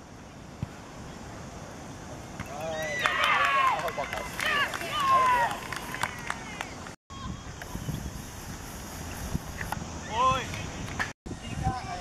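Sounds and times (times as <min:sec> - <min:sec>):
high-pitched voices cheering: 0:02.6 - 0:07.4.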